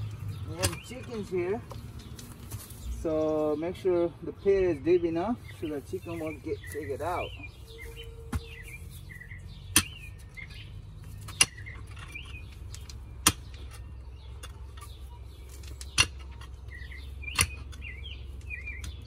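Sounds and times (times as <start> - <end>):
small birds chirping: 0.0 - 19.0.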